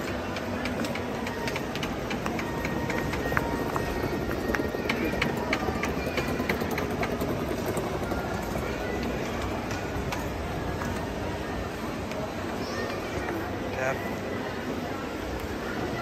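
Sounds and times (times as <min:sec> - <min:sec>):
hubbub of voices: 0:00.0 - 0:16.0.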